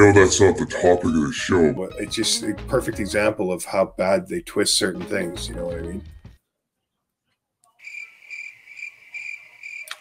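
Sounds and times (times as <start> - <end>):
cricket chirping: 7.8 - 10.0.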